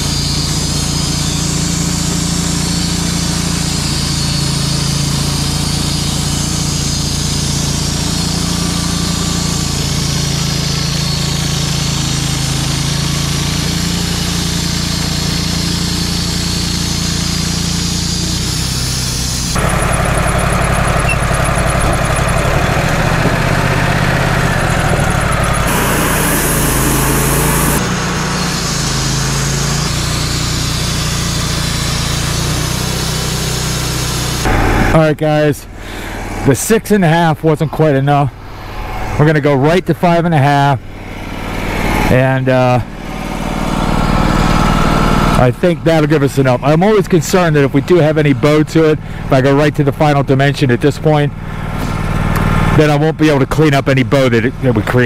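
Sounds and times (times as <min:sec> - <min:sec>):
bandsaw mill sawing a log: 0:00.0 - 0:35.0, 0:40.8 - 0:49.3
louder rougher sawing noise: 0:22.0 - 0:36.5.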